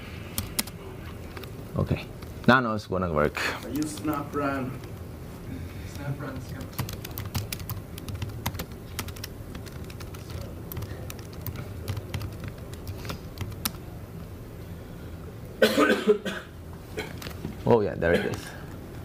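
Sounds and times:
low room hum: 0.0s - 19.0s
laptop keyboard typing: 0.3s - 1.5s, 3.6s - 4.9s, 5.9s - 13.9s.

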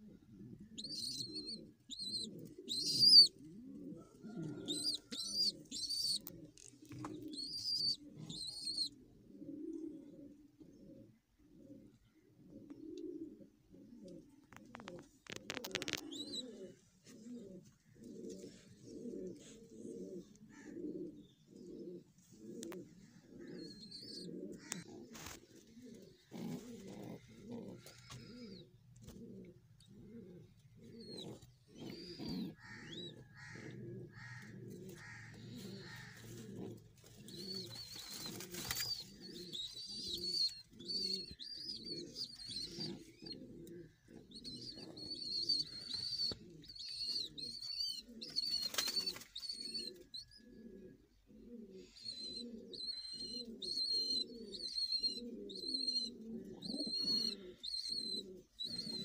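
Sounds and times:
pigeons cooing: 0.0s - 59.0s.

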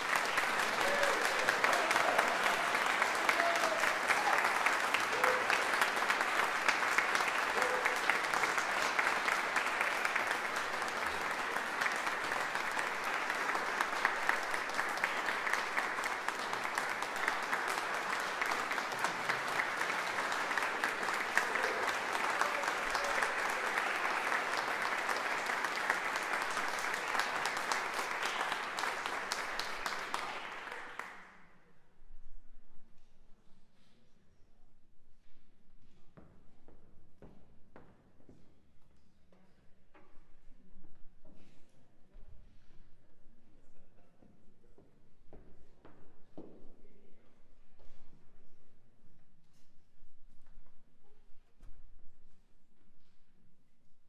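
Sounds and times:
audience applauding: 0.0s - 31.3s.

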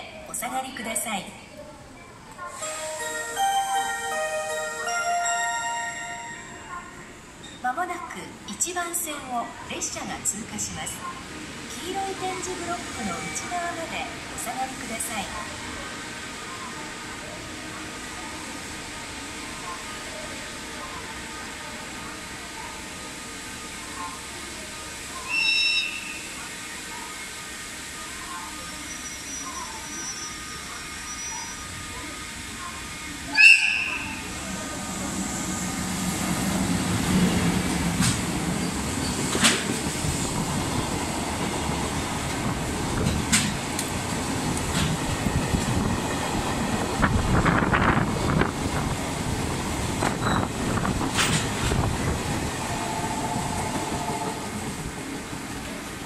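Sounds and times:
freight train rumbling past: 30.7s - 56.0s
locomotive horn blast: 52.8s - 54.6s.

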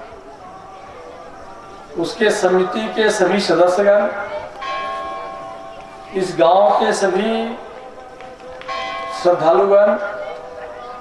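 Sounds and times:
bell ringing: 4.6s - 7.7s, 8.7s - 10.3s.

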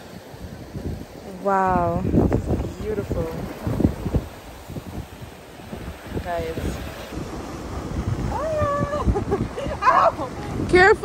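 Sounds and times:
sea surf against rocks: 0.0s - 11.0s
wind buffeting microphone: 0.0s - 11.0s.

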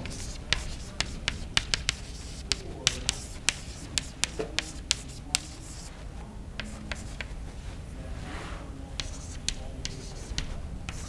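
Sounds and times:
chalk tapping and scraping on blackboard: 0.0s - 6.0s, 6.6s - 7.4s, 9.0s - 11.0s.

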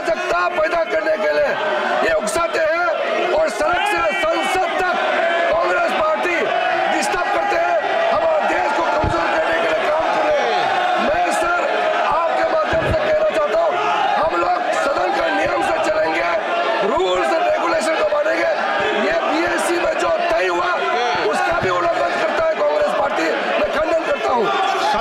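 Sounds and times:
din of overlapping speech: 0.0s - 25.0s
man speaking heatedly: 0.0s - 25.0s.

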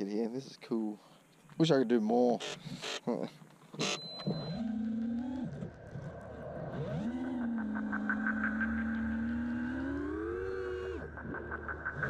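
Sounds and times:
quadcopter motors whining: 2.4s - 11.1s.

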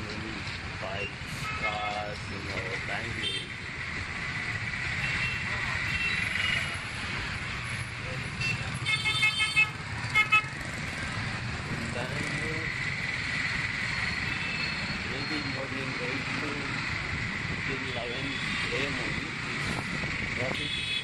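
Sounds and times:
motorcycle and traffic rumble: 0.0s - 21.0s.

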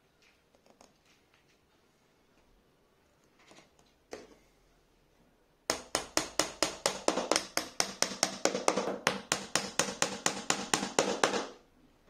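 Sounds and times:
hammer tapping on wooden board: 5.7s - 11.6s.

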